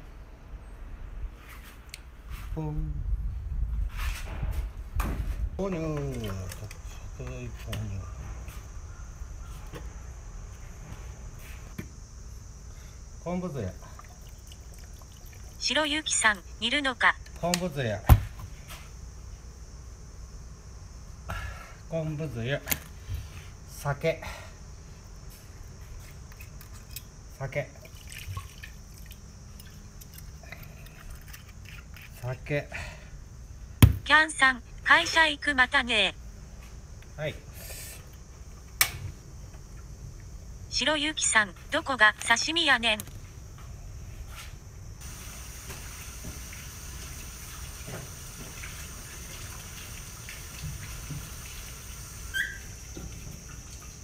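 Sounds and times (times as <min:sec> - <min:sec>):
liquid bubbling and sizzling in pan: 0:13.9 - 0:15.6, 0:45.0 - 0:54.0
water hissing: 0:45.0 - 0:54.0
short high squeak: 0:52.3 - 0:52.7.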